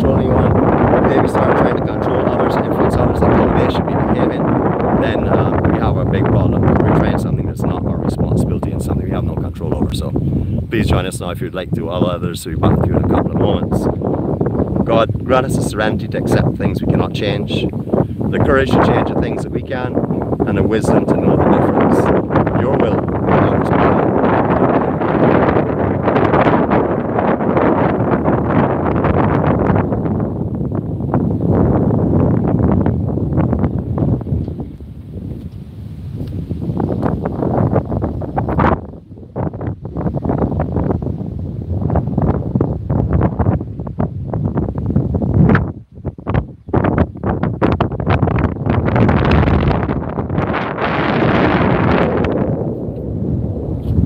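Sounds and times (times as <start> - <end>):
wind buffeting microphone: 0.0 - 54.0.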